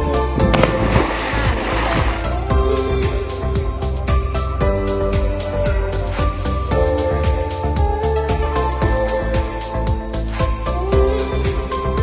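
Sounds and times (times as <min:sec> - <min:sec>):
background music: 0:00.0 - 0:12.0
burst of rushing noise: 0:00.4 - 0:02.4.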